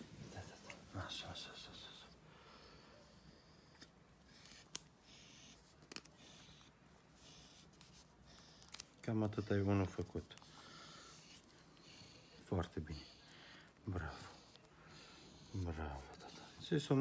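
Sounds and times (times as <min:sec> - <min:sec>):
paper masking tape crinkling: 0:05.6 - 0:06.2.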